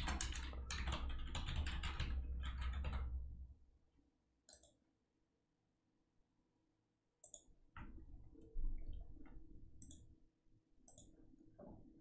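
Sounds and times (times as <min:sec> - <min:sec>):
rapid typing on keyboard: 0:00.0 - 0:03.2.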